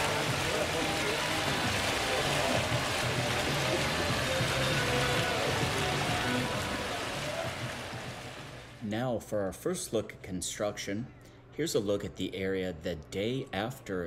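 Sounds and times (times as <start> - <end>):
fountain splashing into pool: 0.0 - 8.8
background music: 0.0 - 9.6.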